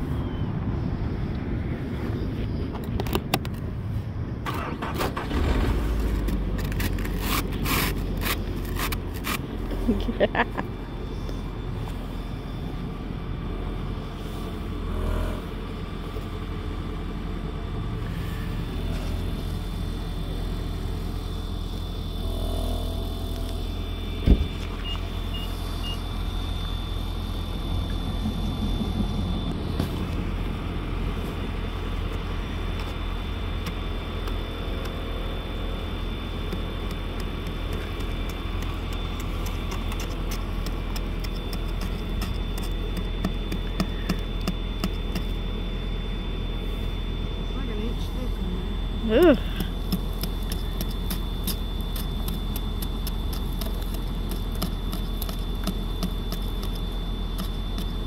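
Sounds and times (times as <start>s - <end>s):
steady low rumble: 0.0s - 58.0s
ice scraper scraping windshield: 5.4s - 9.5s, 49.6s - 58.0s.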